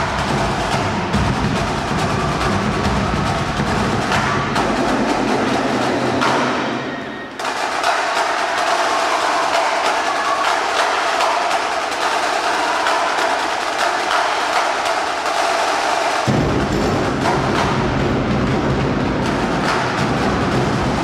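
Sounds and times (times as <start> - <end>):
deep drums: 0.0 - 6.9, 16.2 - 21.0
snare drumline playing: 0.0 - 21.0.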